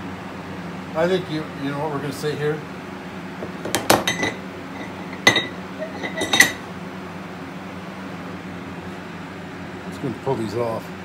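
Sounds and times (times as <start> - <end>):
steady low hum: 0.0 - 10.0
metallic clinks with ring: 4.0 - 6.6.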